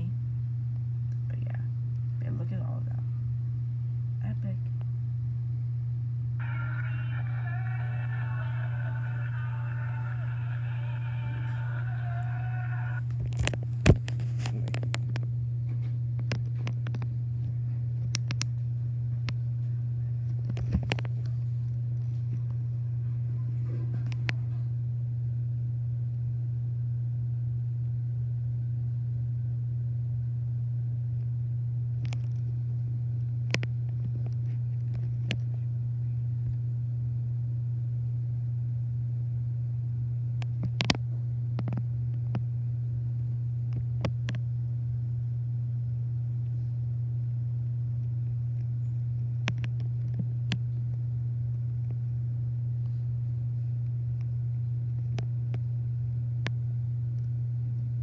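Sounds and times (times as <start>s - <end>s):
steady low hum: 0.0s - 58.0s
show audio through laptop speakers: 6.4s - 15.0s.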